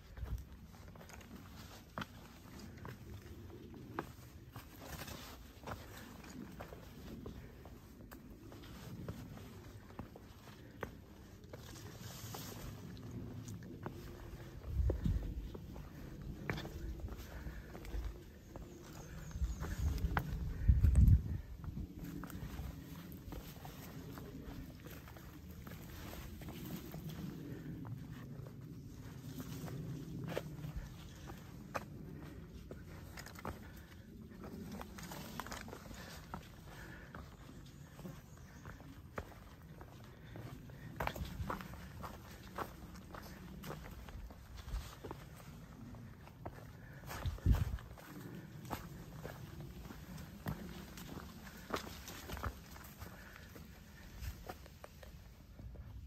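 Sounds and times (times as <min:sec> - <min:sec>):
footsteps on rock and leaves: 0:00.0 - 0:28.3, 0:28.9 - 0:55.8.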